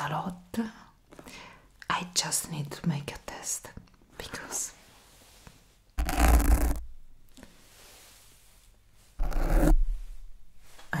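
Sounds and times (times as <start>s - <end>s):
scratching on microphone: 6.0s - 6.9s, 9.0s - 10.8s.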